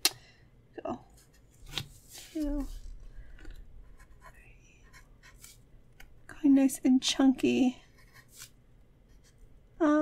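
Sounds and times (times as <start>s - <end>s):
marker scratching on paper: 7.8s - 9.4s.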